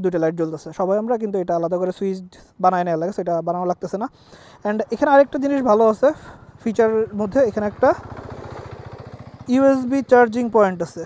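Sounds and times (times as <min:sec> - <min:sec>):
man talking: 0:00.0 - 0:08.0, 0:09.5 - 0:11.0
motorcycle engine idling: 0:04.1 - 0:11.0.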